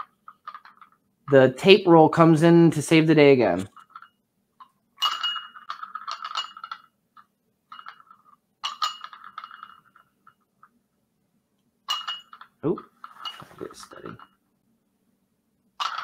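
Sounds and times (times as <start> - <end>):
glass cup clinking and rattling: 5.0 - 6.9, 7.7 - 10.2, 11.9 - 14.4, 15.8 - 16.0.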